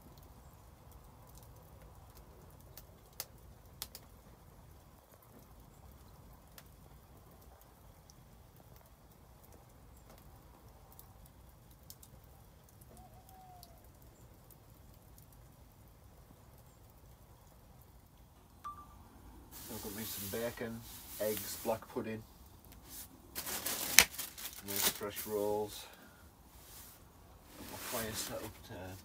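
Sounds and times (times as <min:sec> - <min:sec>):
wood fire crackling: 0:00.0 - 0:29.0
hiss: 0:19.5 - 0:21.6.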